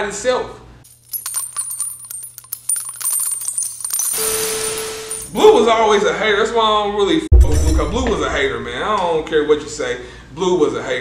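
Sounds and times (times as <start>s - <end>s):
quick clicks and metallic jingles: 0.9s - 5.3s.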